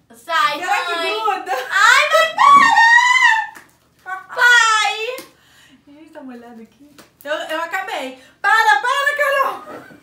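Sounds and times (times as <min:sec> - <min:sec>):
woman and girl squealing: 0:02.1 - 0:03.6.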